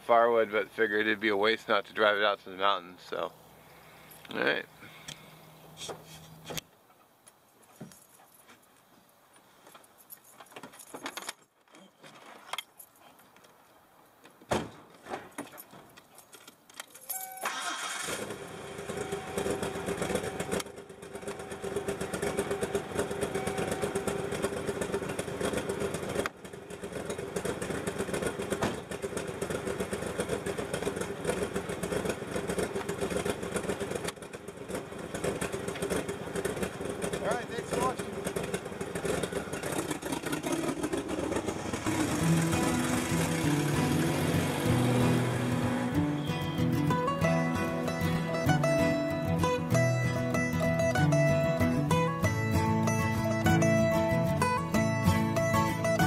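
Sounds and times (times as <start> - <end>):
truck engine starting and idling: 17.0 - 56.0
truck pulling away: 17.4 - 56.0
music: 42.2 - 56.0.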